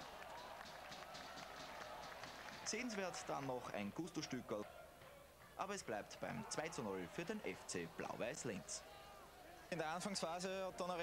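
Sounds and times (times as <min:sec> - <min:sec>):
distant voices of spectators: 0:00.0 - 0:11.0.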